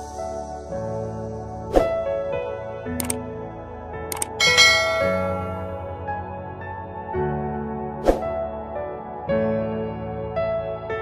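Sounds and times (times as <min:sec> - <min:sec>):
soft background music: 0:00.0 - 0:11.0
mouse click: 0:04.1 - 0:04.4
bell chime: 0:04.2 - 0:06.0.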